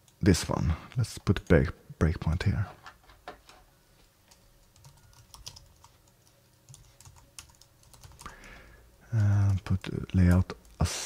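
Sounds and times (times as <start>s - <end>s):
computer keyboard typing: 4.3s - 8.4s, 9.1s - 10.8s.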